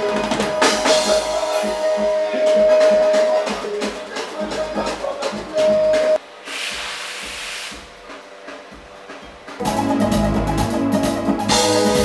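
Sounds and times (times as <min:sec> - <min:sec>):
drum hits: 0:00.0 - 0:06.2, 0:07.2 - 0:12.0
live band playing: 0:00.0 - 0:06.2, 0:09.6 - 0:12.0
steady hiss: 0:06.2 - 0:08.3.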